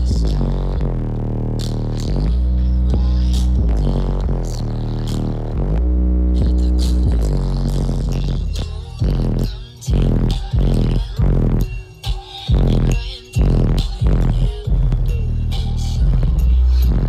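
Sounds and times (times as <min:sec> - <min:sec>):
bass-heavy rap music: 0:00.0 - 0:17.0
hi-hat beat: 0:00.0 - 0:17.0.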